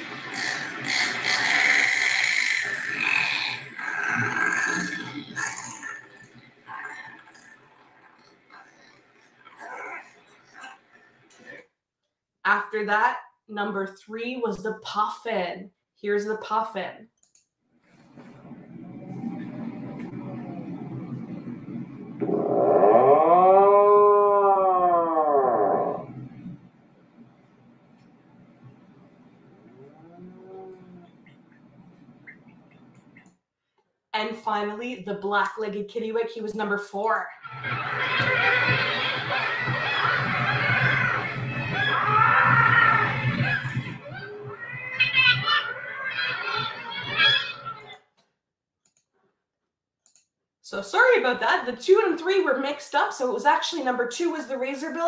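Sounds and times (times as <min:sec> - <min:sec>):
puffin low rough growl: 0:18.6 - 0:26.6
puffin cow-like moan: 0:22.2 - 0:26.4, 0:29.7 - 0:31.2.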